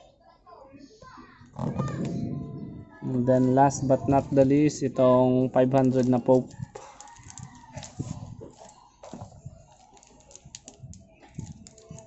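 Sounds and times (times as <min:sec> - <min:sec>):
plastic bag crinkling: 0:05.7 - 0:12.0.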